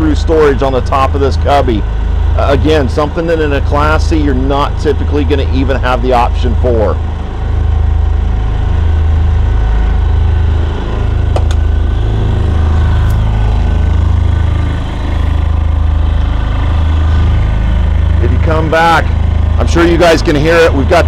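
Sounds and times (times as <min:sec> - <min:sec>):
diesel generator humming: 0:00.0 - 0:21.0.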